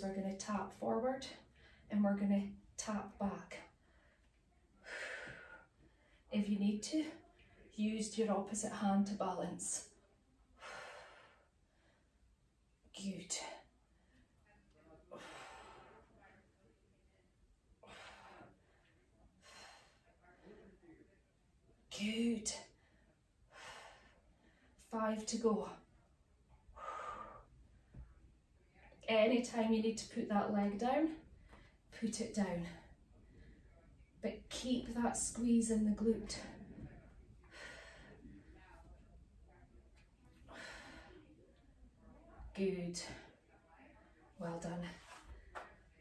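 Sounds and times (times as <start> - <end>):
woman breathing with exertion: 3.7 - 6.3, 10.6 - 12.2, 15.1 - 16.2, 17.8 - 20.6, 22.7 - 24.8, 26.6 - 28.1, 36.3 - 38.8, 40.3 - 41.4.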